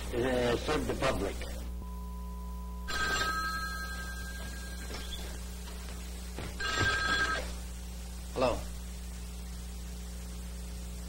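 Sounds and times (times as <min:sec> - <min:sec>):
steady low hum: 0:00.0 - 0:11.0
telephone bell ringing: 0:02.8 - 0:05.4, 0:06.4 - 0:07.6.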